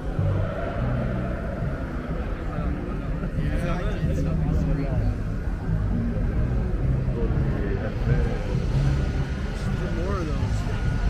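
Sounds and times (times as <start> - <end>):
car engine rumbling: 0.0 - 11.0
outdoor crowd noise: 0.0 - 11.0.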